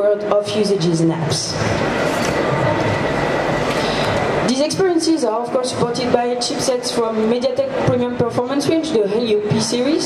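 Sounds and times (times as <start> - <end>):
loud steady rushing noise: 0.0 - 10.0.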